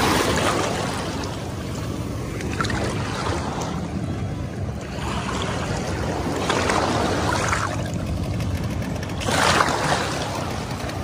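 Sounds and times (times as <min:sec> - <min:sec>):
low wind rumble on microphone: 0:00.0 - 0:11.0
sea water sloshing and splashing: 0:00.0 - 0:11.0.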